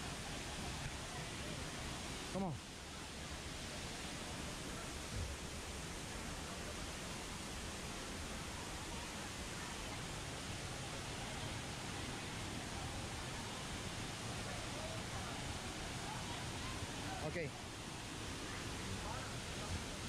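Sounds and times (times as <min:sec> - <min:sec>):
waterfall and creek rushing: 0:00.0 - 0:20.0.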